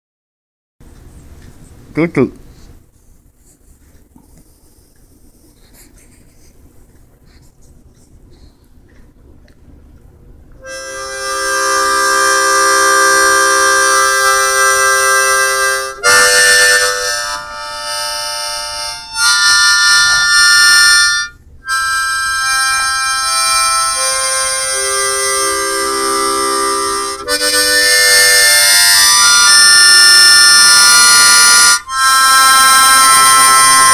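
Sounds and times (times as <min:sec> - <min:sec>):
wind instrument held notes: 0:10.6 - 0:33.9.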